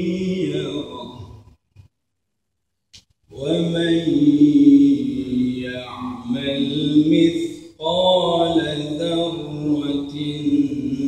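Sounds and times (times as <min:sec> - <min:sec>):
man chanting melodically: 0:00.0 - 0:01.5, 0:03.3 - 0:11.0.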